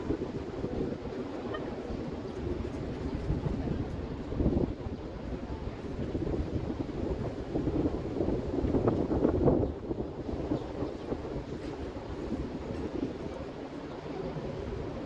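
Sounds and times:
wind rumbling on microphone: 0.0 - 15.0.

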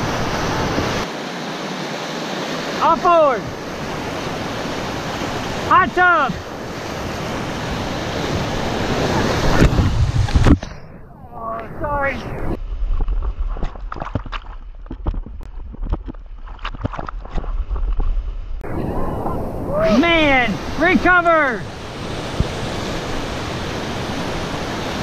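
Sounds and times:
whitewater rushing: 0.0 - 12.6, 18.6 - 25.0.

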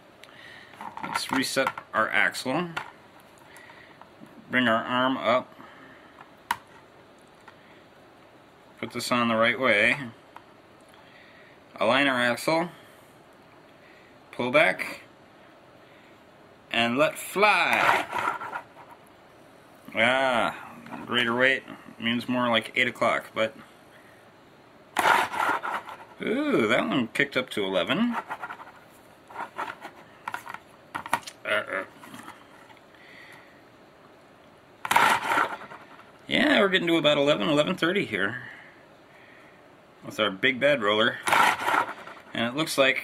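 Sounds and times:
rough scraping of magnetic roller: 17.6 - 19.0, 25.0 - 26.3, 28.0 - 30.6, 34.8 - 36.1, 41.2 - 42.5.

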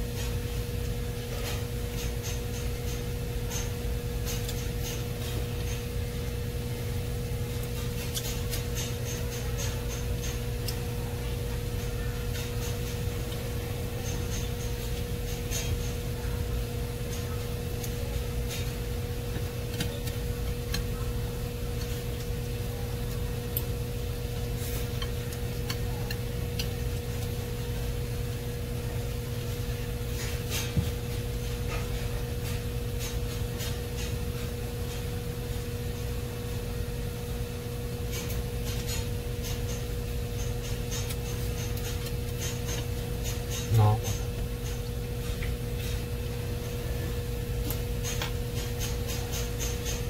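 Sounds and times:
low electrical hum: 0.0 - 50.0
chopsticks clicking on a plate: 25.0 - 27.3.

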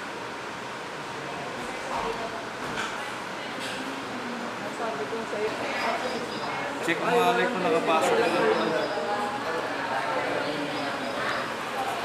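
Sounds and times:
distant voices: 2.9 - 12.0.

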